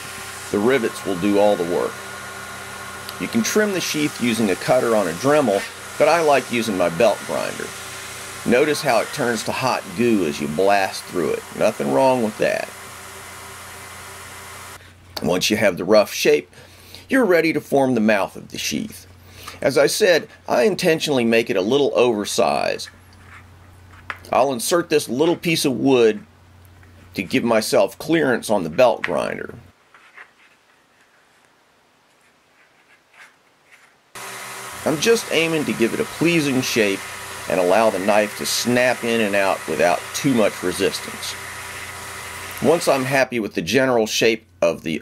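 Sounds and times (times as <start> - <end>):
belt grinder hissing: 0.0 - 14.8, 34.2 - 43.3.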